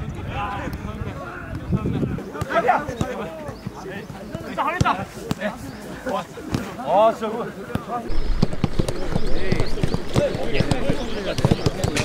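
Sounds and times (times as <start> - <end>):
football thuds on grass: 7.7 - 12.0.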